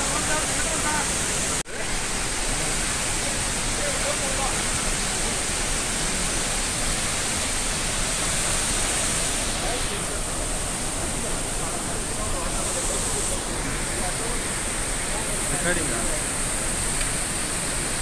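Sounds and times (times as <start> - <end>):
waterfall rushing: 0.0 - 18.0.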